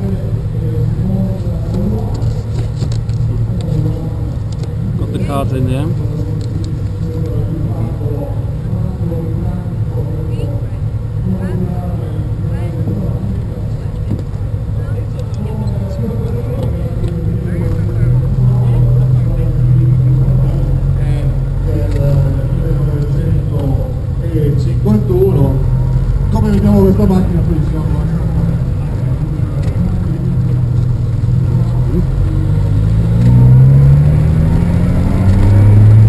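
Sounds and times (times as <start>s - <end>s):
car engine humming: 0.0s - 36.0s
crowd voices: 0.0s - 36.0s.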